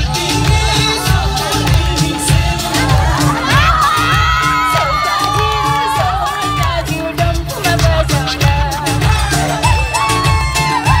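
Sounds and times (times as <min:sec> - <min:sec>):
loud stage music with beat: 0:00.0 - 0:11.0
crowd cheering and whooping: 0:02.5 - 0:07.1, 0:09.0 - 0:11.0.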